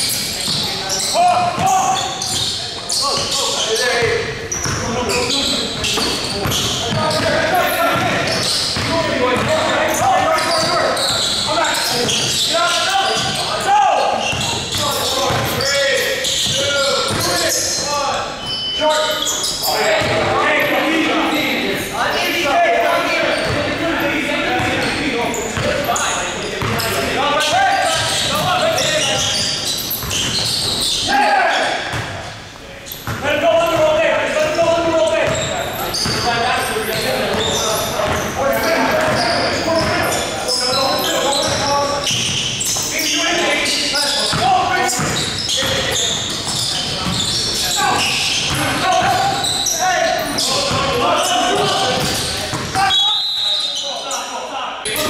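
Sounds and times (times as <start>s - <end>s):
players' voices and shouts: 0.0s - 55.0s
basketball bouncing on court: 0.1s - 2.5s, 4.0s - 12.4s, 13.1s - 15.6s, 16.3s - 17.4s, 26.6s - 27.0s, 27.9s - 30.9s, 33.0s - 36.3s, 37.3s - 38.3s, 44.3s - 49.5s, 50.6s - 52.9s.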